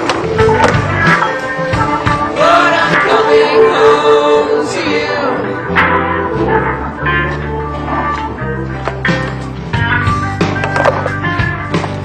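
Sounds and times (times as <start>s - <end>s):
music with bass line: 0.0s - 12.0s.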